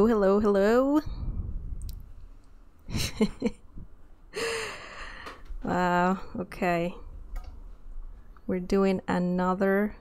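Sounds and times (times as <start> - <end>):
woman chuckling: 2.9 - 5.0
breathy exhale: 4.4 - 5.4.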